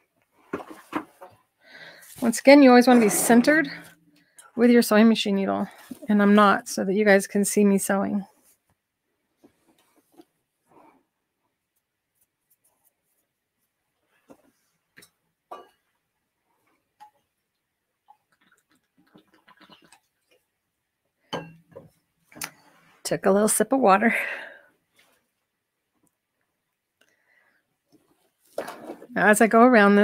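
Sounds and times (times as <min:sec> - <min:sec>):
person sipping water: 0:18.1 - 0:20.4.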